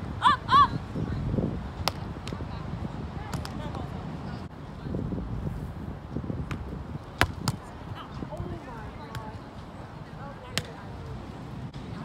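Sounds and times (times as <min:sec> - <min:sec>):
ball thuds: 0:06.4 - 0:07.7.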